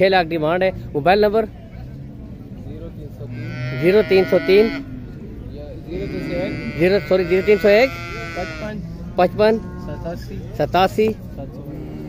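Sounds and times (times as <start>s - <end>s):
cow mooing: 3.3s - 5.1s, 5.8s - 10.2s.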